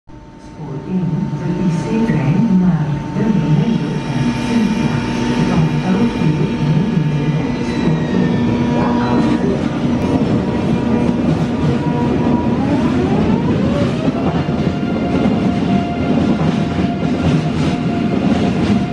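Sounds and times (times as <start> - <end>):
electric train whining: 0.2 - 18.9.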